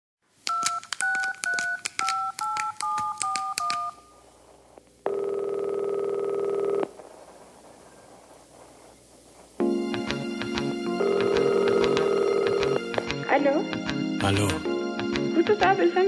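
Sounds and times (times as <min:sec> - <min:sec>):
phone key clicks: 0:00.5 - 0:03.9
touch-tone dialing beeps: 0:00.5 - 0:04.1, 0:05.1 - 0:06.8.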